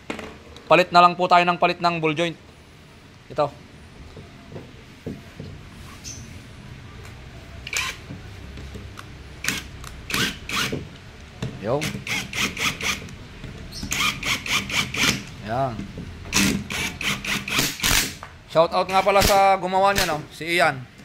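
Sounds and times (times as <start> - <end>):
impact wrench bursts: 7.6 - 8.1, 9.4 - 10.8, 11.7 - 15.4, 16.3 - 18.2.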